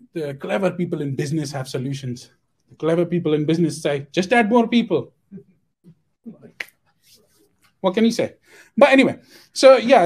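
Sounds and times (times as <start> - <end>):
man talking: 0.0 - 5.4, 7.8 - 10.0.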